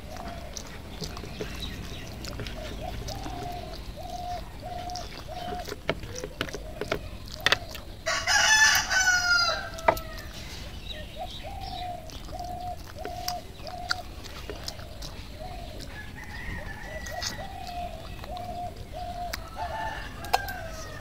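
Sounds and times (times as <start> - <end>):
bird calling: 0.0 - 21.0
rooster crowing: 8.0 - 10.4, 15.9 - 17.9, 19.0 - 21.0.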